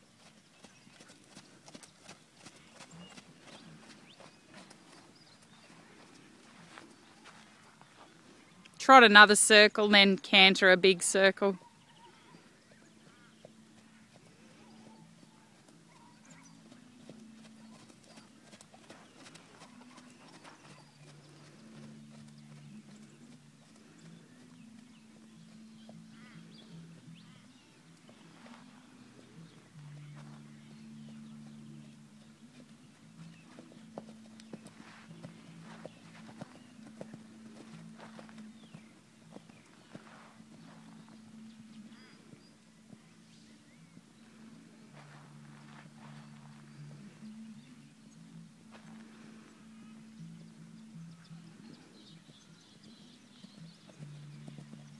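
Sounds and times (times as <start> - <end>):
soft hoofbeats on sand: 0.0 - 54.9.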